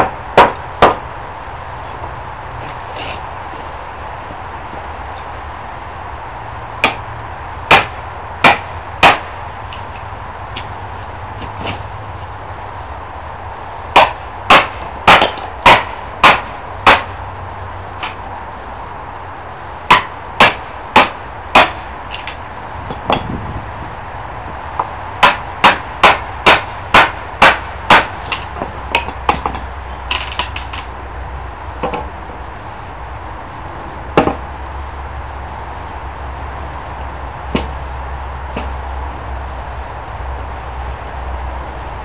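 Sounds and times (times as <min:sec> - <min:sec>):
hammer striking wedge in log: 0:00.0 - 0:01.0, 0:06.8 - 0:07.0, 0:07.7 - 0:09.3, 0:14.0 - 0:17.1, 0:19.9 - 0:21.8, 0:25.2 - 0:28.1, 0:34.2 - 0:34.4, 0:37.5 - 0:37.7
low background noise: 0:00.0 - 0:42.0.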